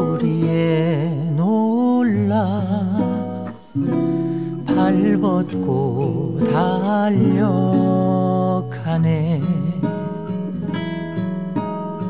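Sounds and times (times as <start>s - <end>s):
person singing with vibrato: 0.0s - 11.0s
instrumental accompaniment: 0.0s - 12.0s.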